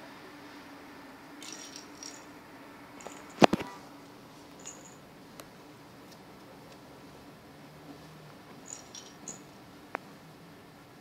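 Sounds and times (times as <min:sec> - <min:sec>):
plastic rattle ball jingling: 0:01.4 - 0:02.4, 0:03.0 - 0:03.5, 0:04.5 - 0:05.0, 0:08.6 - 0:09.6.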